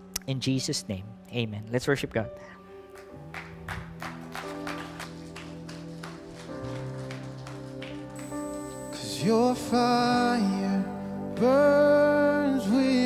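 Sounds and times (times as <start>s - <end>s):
man singing: 9.0s - 13.0s.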